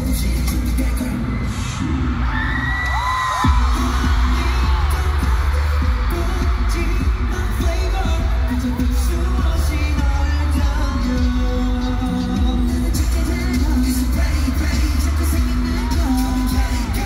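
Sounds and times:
pop music over sound system: 0.0 - 17.0.

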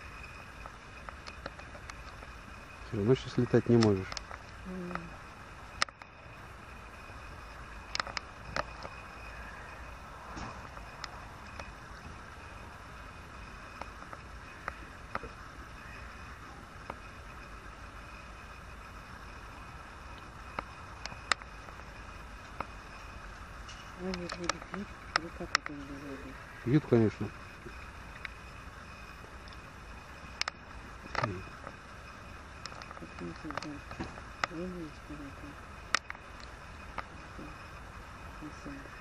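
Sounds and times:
faint chirps: 0.0 - 39.0.

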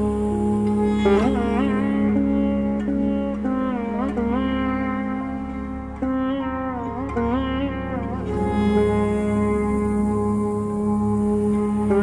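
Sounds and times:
low drone: 0.0 - 12.0
sitar melody: 0.0 - 12.0.

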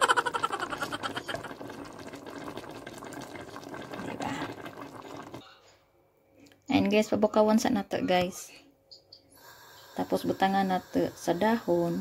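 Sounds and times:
water pouring into a pot: 0.0 - 5.4.

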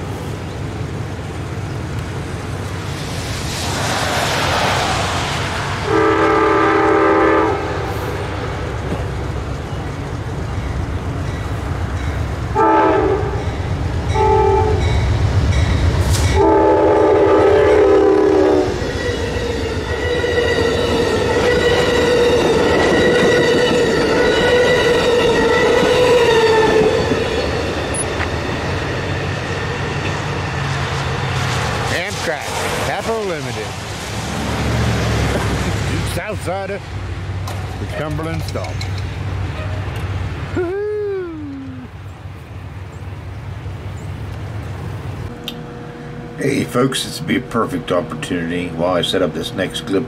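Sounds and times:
locomotive horn blasts: 5.8 - 8.0, 12.5 - 13.4, 14.1 - 14.9, 16.3 - 27.0
train wheels clattering over rails: 34.3 - 36.3, 37.4 - 40.1.

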